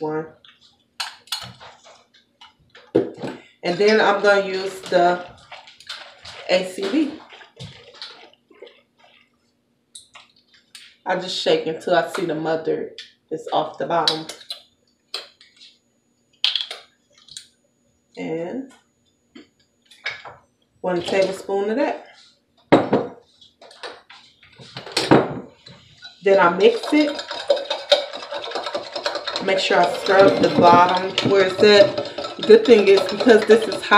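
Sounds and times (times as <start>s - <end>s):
liquid sloshing in shaken bottle: 3.8s - 9.4s, 26.1s - 33.9s
metal spoon stirring in steel tumbler: 26.0s - 33.9s.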